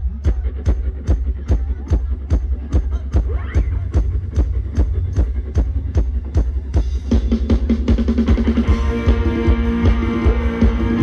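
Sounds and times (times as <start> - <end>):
heavy drum beat: 0.0 - 11.0
strong bass: 0.0 - 11.0.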